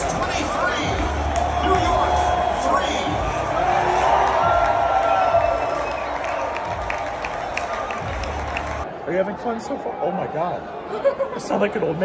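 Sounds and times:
stadium crowd cheering and applauding: 0.0 - 10.8.

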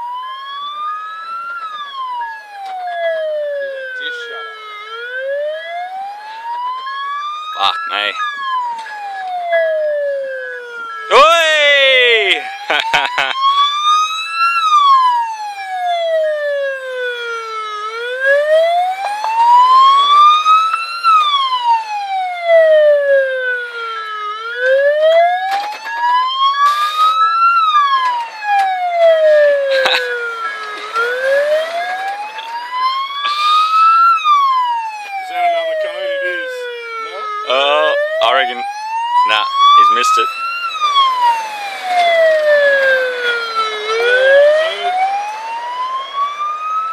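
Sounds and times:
ambulance siren wailing: 0.0 - 46.9.

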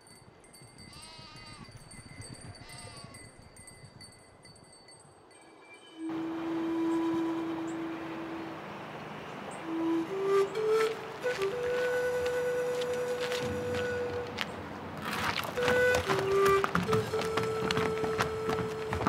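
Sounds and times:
flute music: 5.9 - 19.0
long held musical note: 6.0 - 14.9.

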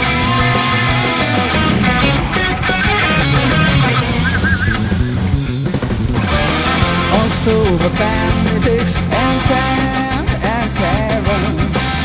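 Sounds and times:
electric guitar: 0.0 - 12.0
rock band backing track: 0.0 - 12.0.

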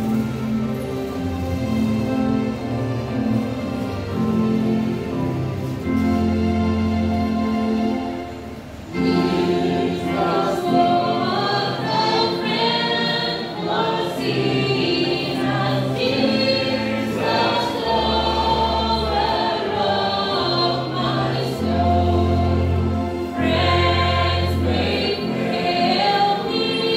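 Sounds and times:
electronic keyboard chords: 0.0 - 26.9
group singing a hymn: 8.8 - 26.9.

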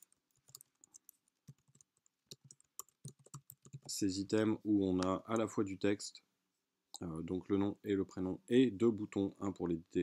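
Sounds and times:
computer keyboard typing: 0.0 - 4.0.

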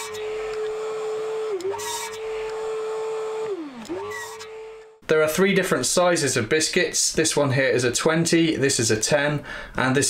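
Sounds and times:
electric mitre saw whining: 0.0 - 5.0
saw cutting boards: 0.0 - 5.0.

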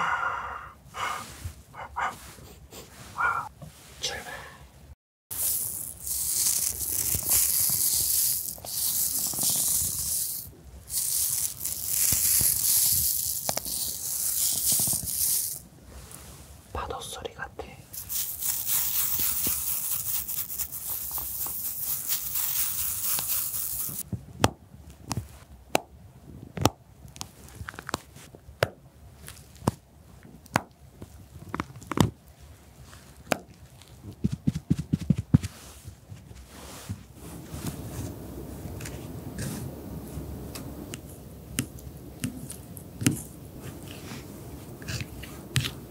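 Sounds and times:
scratchy hissing: 5.3 - 15.6, 17.9 - 24.0, 37.8 - 45.9.

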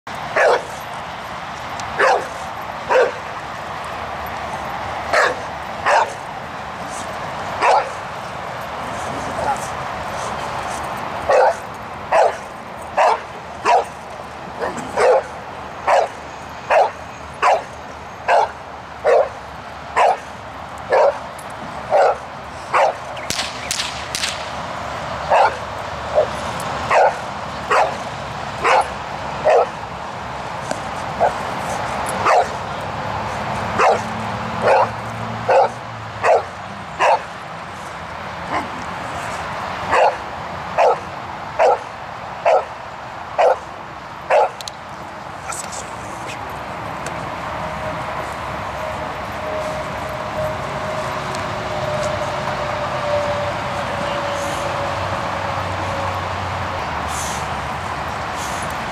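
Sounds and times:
large dog barking: 0.3 - 0.8, 2.0 - 3.3, 5.1 - 6.2, 7.6 - 8.0, 11.3 - 14.0, 14.6 - 17.7, 18.3 - 19.4, 20.0 - 20.3, 20.9 - 21.2, 21.9 - 23.1, 25.3 - 28.0, 28.6 - 29.8, 32.2 - 32.6, 33.7 - 37.3, 39.9 - 40.2, 40.8 - 42.7, 43.4 - 43.7, 44.3 - 44.6.

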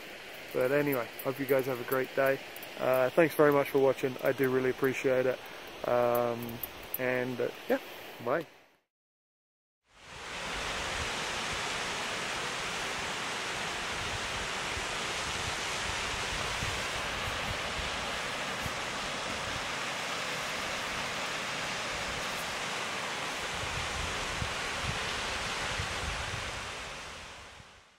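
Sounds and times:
waterfall rushing hiss: 0.0 - 8.4, 9.9 - 27.8.

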